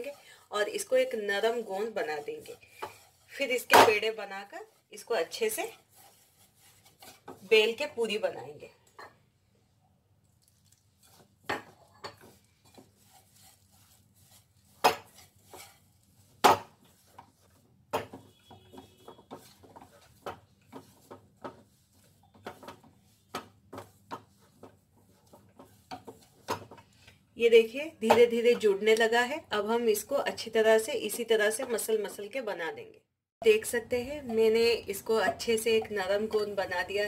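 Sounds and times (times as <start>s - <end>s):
hand mixing dough in metal bowl: 0.0s - 8.6s, 9.6s - 32.6s, 33.4s - 37.0s.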